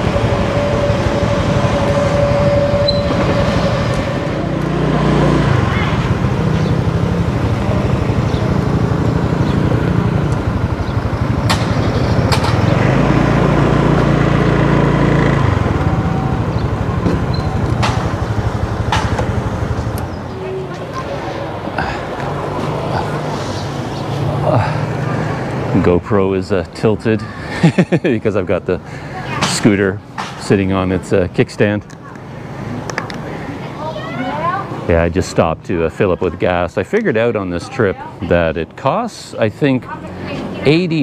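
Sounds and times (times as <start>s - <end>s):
motor scooter engine rumble: 0.0s - 38.8s.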